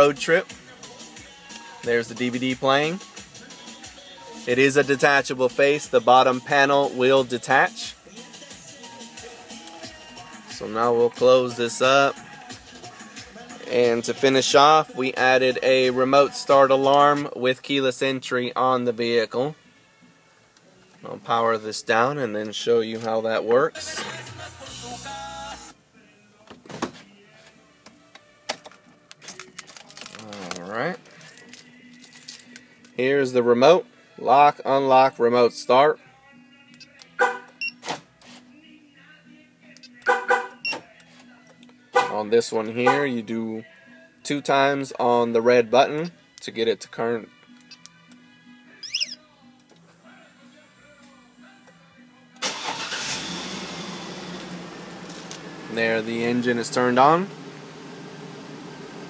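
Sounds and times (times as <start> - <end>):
car stereo music: 0.0 - 25.9, 27.1 - 59.0
car engine cranking and idling: 52.4 - 59.0.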